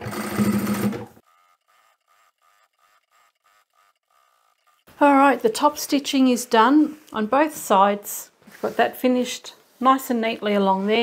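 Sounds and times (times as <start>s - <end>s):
sewing machine running: 0.0s - 4.9s.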